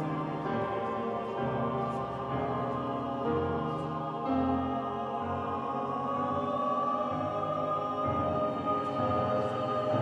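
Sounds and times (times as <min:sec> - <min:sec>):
choir singing held chords: 0:00.0 - 0:10.0.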